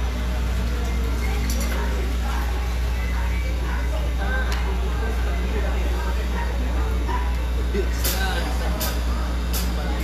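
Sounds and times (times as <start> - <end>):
background voices and chatter: 0.0 - 10.0.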